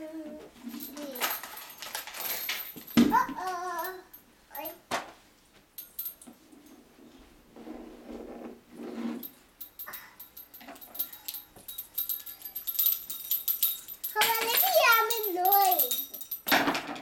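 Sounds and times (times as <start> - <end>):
light clicks and rattles: 0.6 - 5.1, 9.2 - 17.0.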